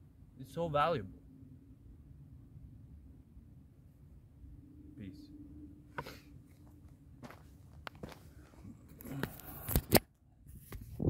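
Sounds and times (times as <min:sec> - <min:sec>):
footsteps on gravel: 0:06.5 - 0:09.4.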